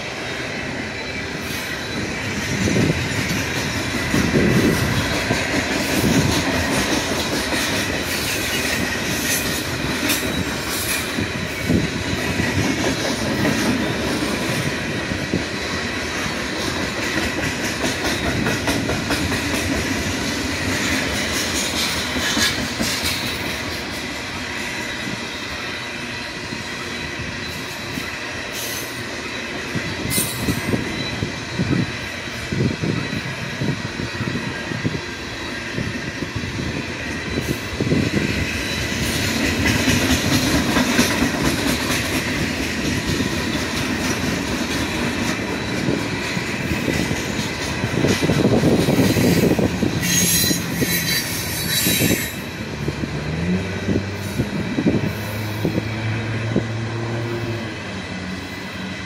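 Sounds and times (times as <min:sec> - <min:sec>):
low train rumble: 0:00.0 - 0:59.0
train wheel squeal: 0:00.0 - 0:59.0.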